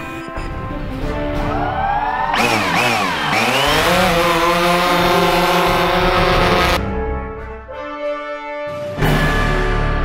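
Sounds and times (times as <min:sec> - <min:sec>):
drone propellers whining and humming: 0:00.1 - 0:06.8.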